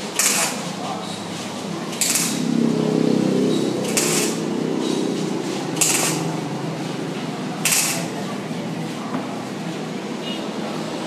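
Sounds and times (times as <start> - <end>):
steady low hum: 0.0 - 11.0
welding arc hissing bursts: 0.2 - 0.6, 5.8 - 6.2, 7.7 - 8.1.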